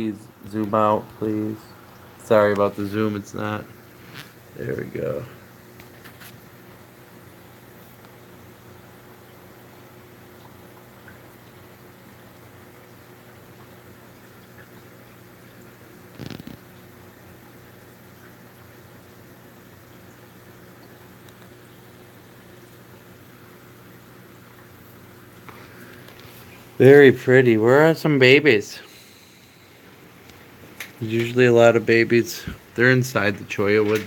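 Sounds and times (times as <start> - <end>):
aquarium equipment hum: 0.0 - 34.0.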